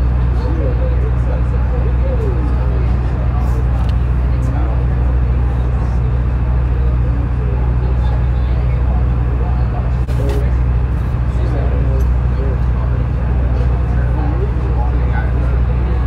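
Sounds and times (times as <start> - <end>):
boat engine humming: 0.0 - 16.0
faint passenger chatter: 0.0 - 16.0.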